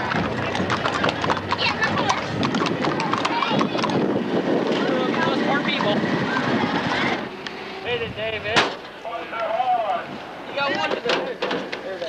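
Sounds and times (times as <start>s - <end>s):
wind rumbling on microphone: 0.0s - 8.6s
crowd noise: 0.0s - 12.0s
sharp bang: 8.4s - 9.0s.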